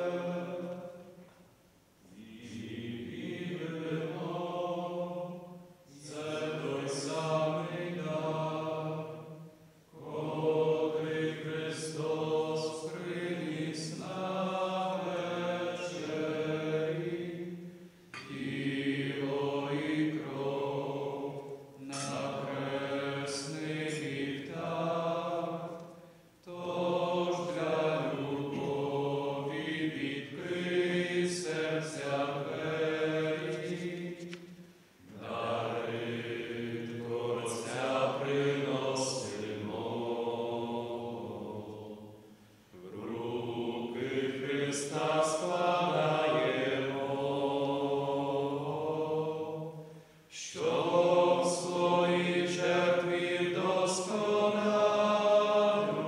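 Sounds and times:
men singing a hymn: 0:02.1 - 0:09.3, 0:10.0 - 0:42.2, 0:42.8 - 0:56.0.

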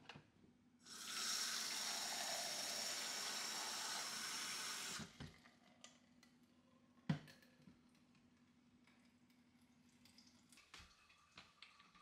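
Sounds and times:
faucet water stream into pitcher: 0:00.9 - 0:05.2.

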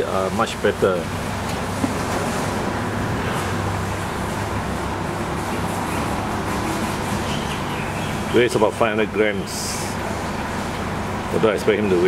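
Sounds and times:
background rumble and hiss: 0:00.0 - 0:12.0.

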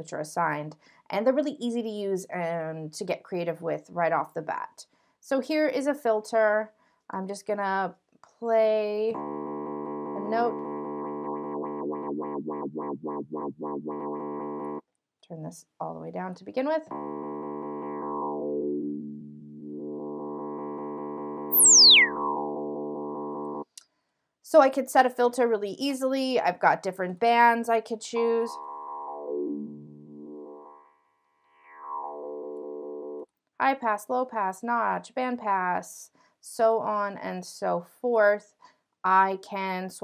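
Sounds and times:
filtered synth bass note: 0:09.2 - 0:14.8, 0:16.9 - 0:23.6, 0:28.4 - 0:30.9, 0:31.6 - 0:33.2.

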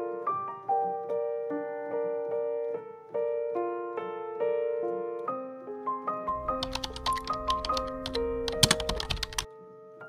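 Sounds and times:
soft piano music: 0:00.0 - 0:10.0.

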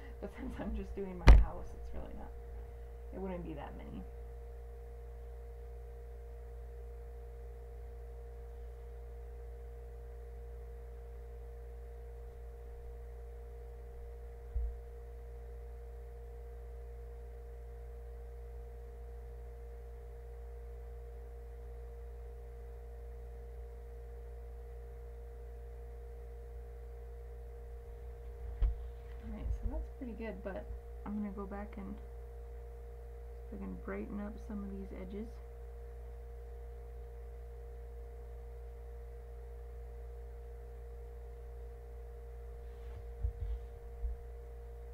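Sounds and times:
electrical hum: 0:00.0 - 0:44.9
low thump: 0:01.2 - 0:01.9.

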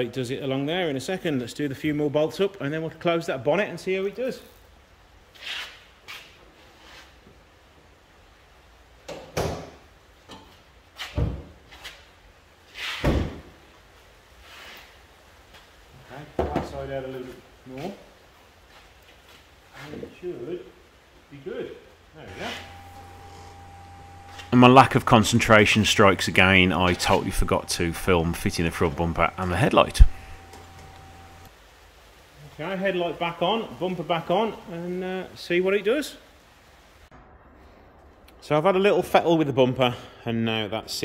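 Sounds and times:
faint hum with high whine: 0:22.2 - 0:31.5.

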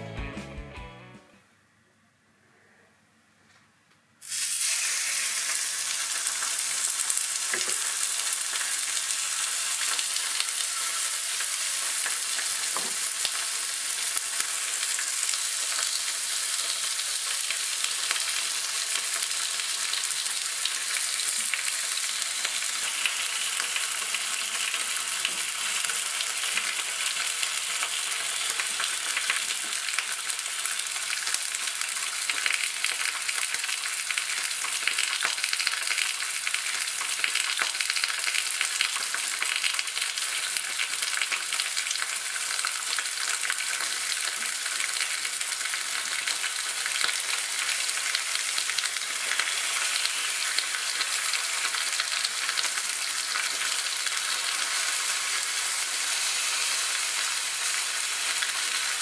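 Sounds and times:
meat sizzling in hot oil: 0:04.2 - 0:59.0.

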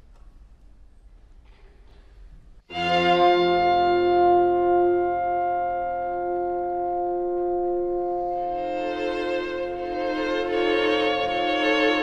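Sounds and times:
chamber ensemble sustained chord: 0:02.7 - 0:12.0.

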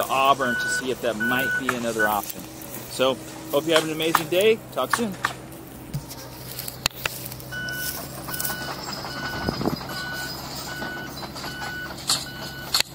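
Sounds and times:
low engine drone: 0:00.0 - 0:12.9
backup alarm beeping: 0:00.3 - 0:02.2, 0:07.5 - 0:12.9.

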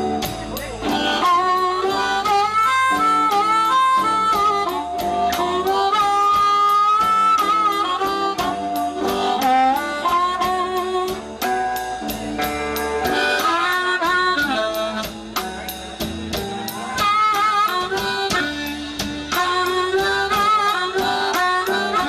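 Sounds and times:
amplified harmonica: 0:00.0 - 0:22.0
bass: 0:00.0 - 0:22.0
electric guitar: 0:00.0 - 0:22.0
steady drum beat: 0:00.0 - 0:22.0.

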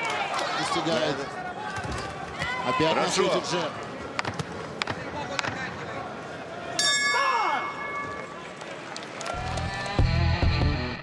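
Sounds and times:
arena crowd noise: 0:00.0 - 0:10.4
boxing ring bell: 0:06.8 - 0:08.4
loud rock music: 0:10.0 - 0:11.0.

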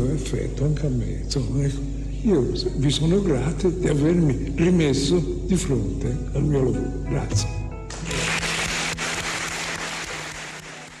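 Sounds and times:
steady low hum: 0:00.0 - 0:09.1
audience applauding: 0:07.9 - 0:11.0.

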